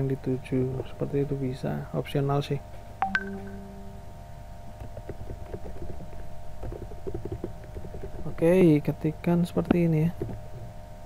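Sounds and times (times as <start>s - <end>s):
low steady hum: 0.0s - 11.0s
computer keyboard keys tapping: 4.9s - 8.3s.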